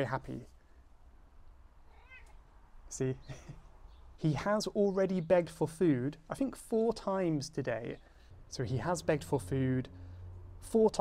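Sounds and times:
cat meowing: 1.9 - 2.4.

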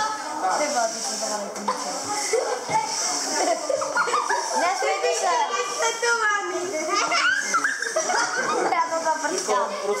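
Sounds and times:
children calling out and talking: 1.7 - 10.0.

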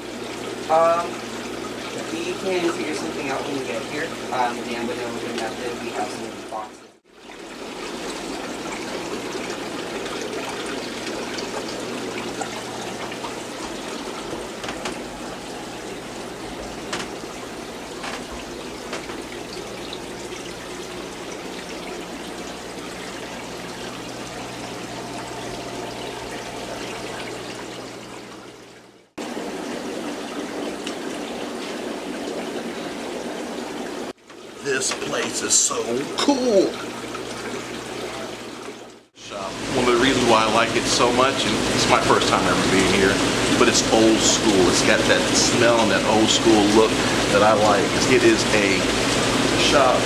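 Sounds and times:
low hum of pumps: 0.0 - 50.0
water trickling and splashing: 0.0 - 50.0.

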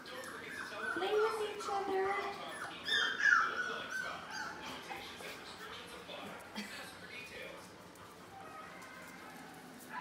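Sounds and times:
puppies whining and squealing: 0.0 - 4.9.

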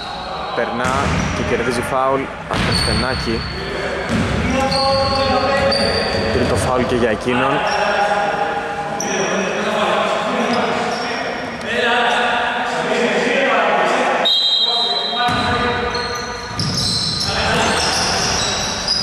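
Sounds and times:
players calling out: 0.0 - 19.0
high squeak: 15.8 - 19.0.

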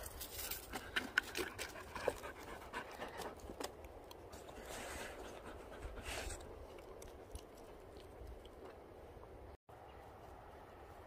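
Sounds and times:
dog panting: 1.4 - 3.4.

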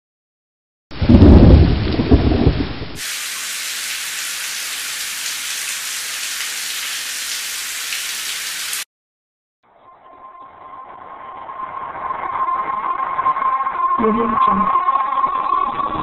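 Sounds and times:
low rumble of thunder: 0.9 - 3.0
rain hissing: 1.0 - 8.9.

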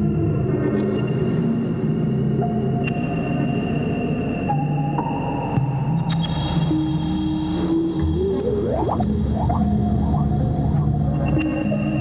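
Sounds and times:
sustained synth tones: 6.7 - 12.0
low drone: 7.7 - 11.9
high synth tone: 8.0 - 9.8.

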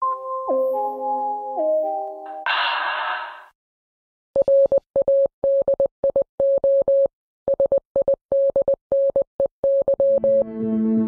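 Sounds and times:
morse code beeps: 4.4 - 10.5.

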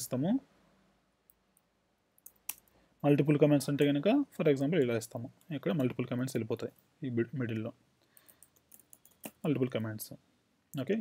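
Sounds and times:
keyboard keys typing: 8.2 - 9.7.

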